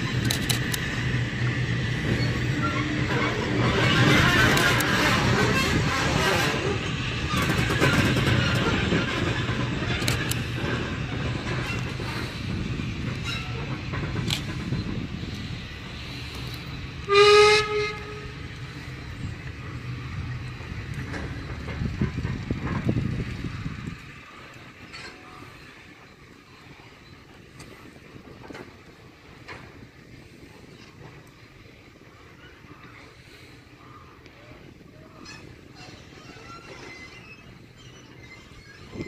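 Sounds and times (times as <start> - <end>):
train rumble: 0.0 - 39.0
locomotive horn blast: 17.0 - 18.5.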